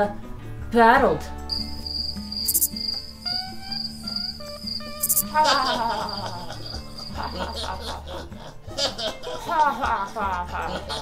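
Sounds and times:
background music: 0.0s - 11.0s
crickets chirping: 1.5s - 7.8s
people laughing: 5.3s - 11.0s.

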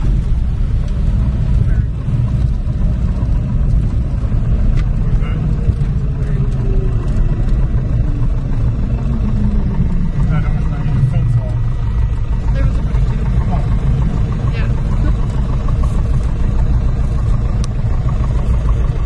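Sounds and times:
airplane engine and propeller drone: 0.0s - 19.0s.

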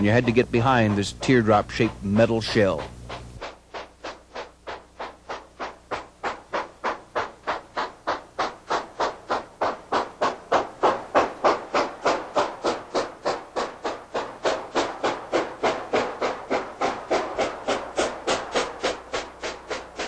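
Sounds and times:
steam locomotive chuffing: 0.0s - 20.0s.

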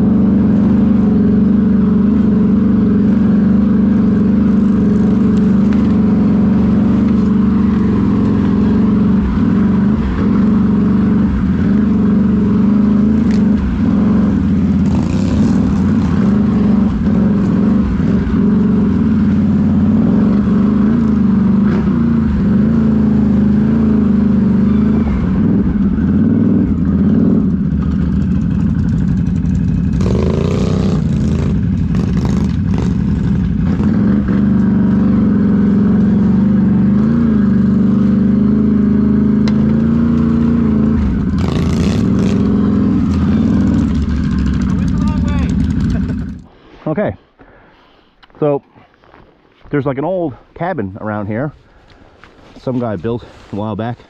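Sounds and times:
atv engine revving: 0.0s - 46.5s.

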